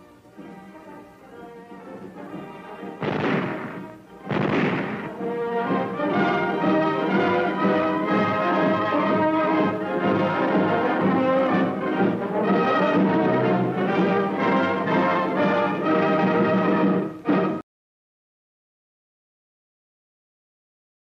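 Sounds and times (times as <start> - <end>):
orchestral music led by brass: 0.0 - 17.6
loud noisy crash: 3.0 - 5.3.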